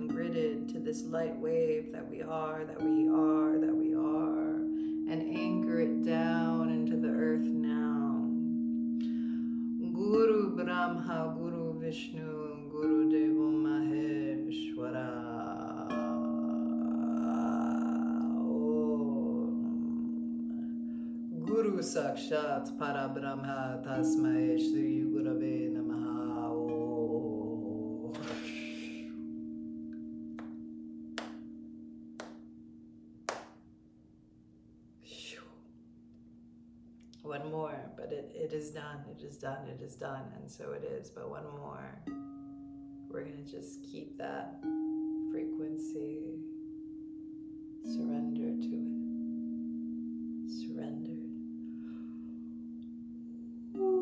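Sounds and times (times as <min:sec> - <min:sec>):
crystal singing bowls: 0:44.3 - 0:54.0.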